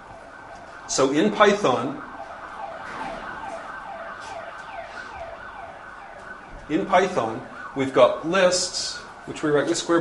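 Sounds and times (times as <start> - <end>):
siren-like falling tone: 2.0 - 7.8
person lecturing: 6.7 - 10.0.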